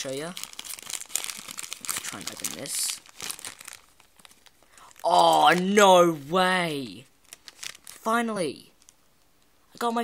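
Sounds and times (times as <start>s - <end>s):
plastic packet crinkling: 0.0s - 5.8s, 7.2s - 8.1s, 8.7s - 9.0s.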